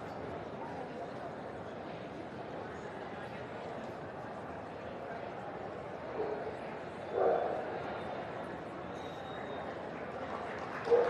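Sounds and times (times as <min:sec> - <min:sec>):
murmur of busy hall: 0:00.0 - 0:11.0.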